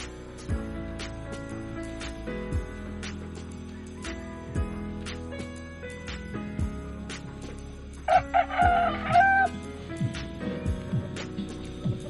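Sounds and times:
background music with steady beat: 0.0 - 12.0
rooster crowing: 8.1 - 9.6.

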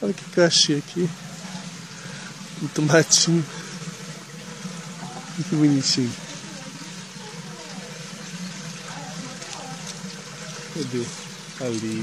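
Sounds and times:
running water: 0.0 - 12.0.

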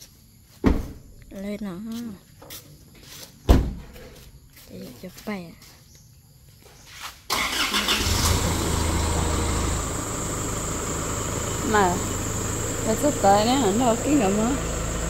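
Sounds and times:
diesel engine starting and idling: 7.3 - 15.0.

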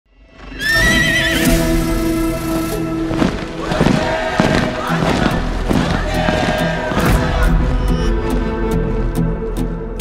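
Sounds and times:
cinematic music: 0.1 - 10.0
horse whinnying: 0.4 - 2.2.

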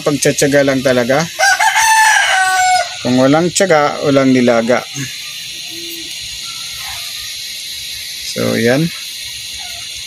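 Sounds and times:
steady high hiss: 0.0 - 10.0
faint animal calls: 4.9 - 7.5, 8.9 - 10.0.

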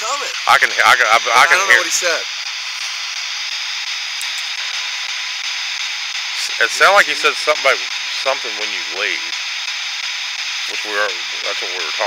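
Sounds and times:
static hiss: 0.0 - 12.0.

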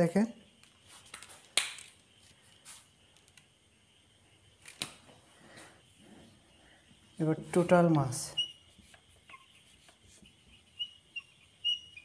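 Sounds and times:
marker squeaking on whiteboard: 8.0 - 12.0.

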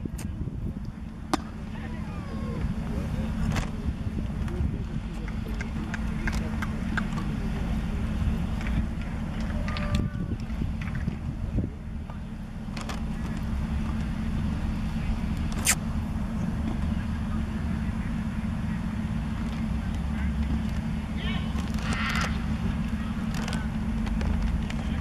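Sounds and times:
constant low hum: 0.0 - 25.0
faint distant voices: 0.0 - 25.0
wind rumble on microphone: 0.0 - 25.0.

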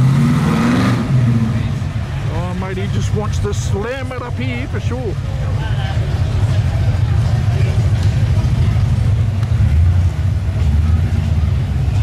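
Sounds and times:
car exhaust rumble at low revs: 1.0 - 12.0.

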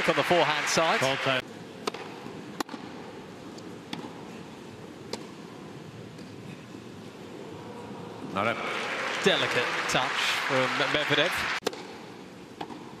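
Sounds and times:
tennis ball struck by racquet: 1.8 - 2.9, 11.6 - 12.0, 12.6 - 12.9.

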